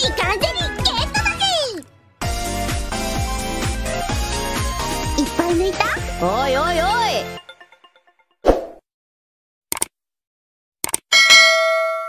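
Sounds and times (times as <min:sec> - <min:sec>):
mouse clicks: 0:10.8 - 0:11.0.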